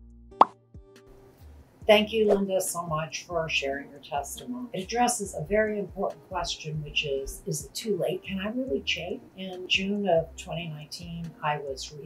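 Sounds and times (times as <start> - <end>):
person speaking: 1.9 - 12.0.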